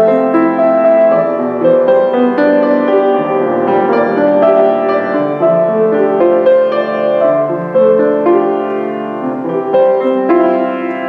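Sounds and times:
solo grand piano: 0:00.0 - 0:11.0.

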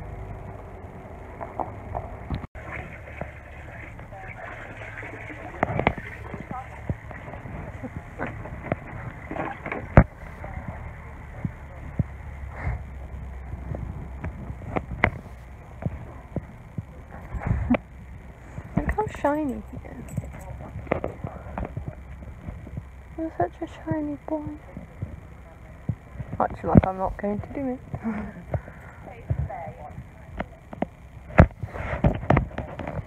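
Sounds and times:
low rumble: 0:00.0 - 0:33.0.

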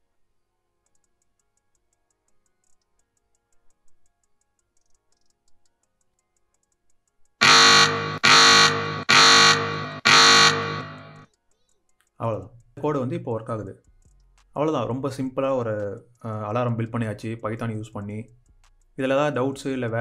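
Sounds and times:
faint clicks: 0:00.8 - 0:07.4, 0:11.2 - 0:12.8, 0:13.8 - 0:14.6
loud repeated alarm tones: 0:07.4 - 0:11.2.

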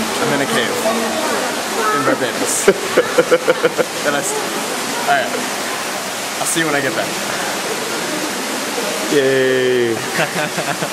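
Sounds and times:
running water in a cave: 0:00.0 - 0:10.9.

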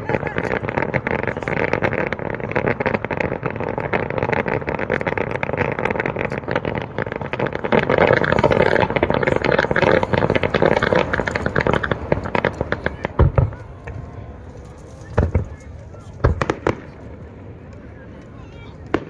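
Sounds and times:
fireworks crackling: 0:00.0 - 0:19.0.

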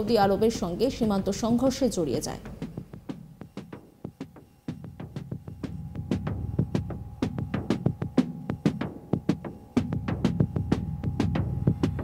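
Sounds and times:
fast electronic drum beat: 0:01.4 - 0:12.0
low throbbing drone: 0:02.5 - 0:12.0
faint held synth tone: 0:03.4 - 0:12.0.

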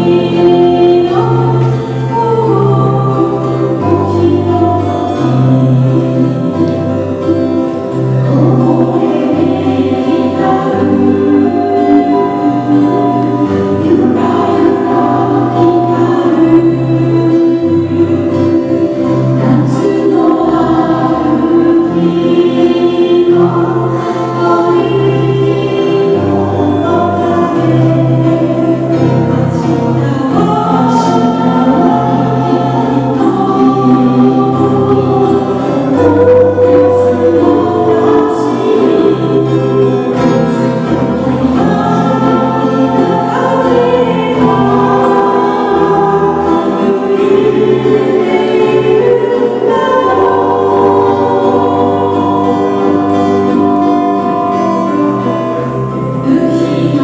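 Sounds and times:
bass guitar: 0:00.0 - 0:57.0
guitars: 0:00.0 - 0:57.0
person singing: 0:00.0 - 0:57.0
ukulele: 0:00.0 - 0:57.0.

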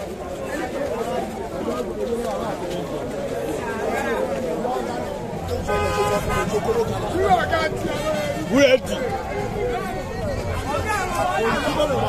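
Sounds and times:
crowd talking: 0:00.0 - 0:12.0
vehicle horn: 0:05.6 - 0:06.8.

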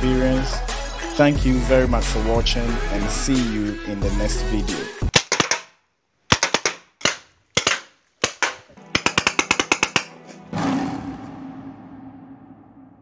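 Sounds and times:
music: 0:00.0 - 0:05.1, 0:08.7 - 0:13.0
paintball marker firing: 0:05.1 - 0:05.7, 0:06.3 - 0:10.4.

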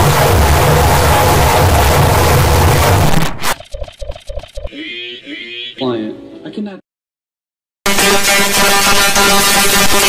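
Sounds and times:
low rumbling drone: 0:00.0 - 0:03.1
choppy glitch stutters: 0:00.0 - 0:04.8.

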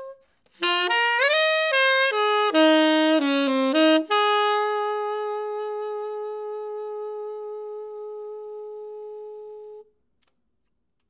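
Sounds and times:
saxophone long note: 0:00.0 - 0:09.9.

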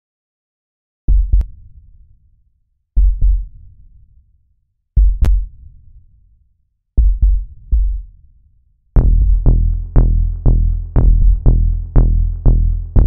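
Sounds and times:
deep booming bass hits: 0:09.0 - 0:13.0.

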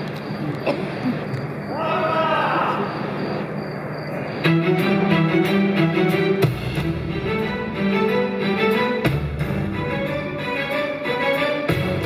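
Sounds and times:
sustained string notes: 0:04.4 - 0:12.0.

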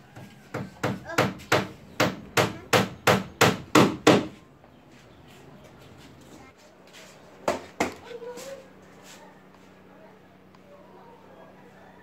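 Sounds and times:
hammer nailing plywood: 0:00.5 - 0:04.4.

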